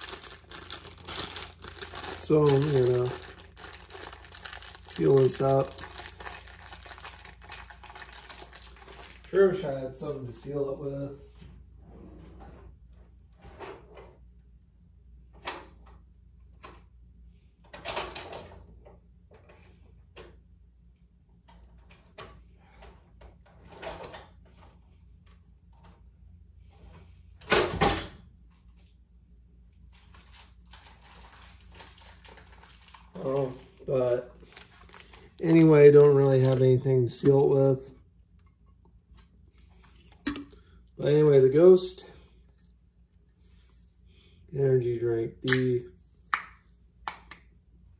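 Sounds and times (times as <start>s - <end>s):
plastic bag crinkling: 0.0s - 9.7s, 30.0s - 37.4s.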